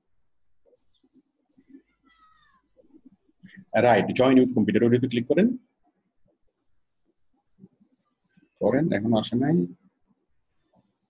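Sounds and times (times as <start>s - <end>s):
faint falling high-pitched cry: 1.7s - 3.0s.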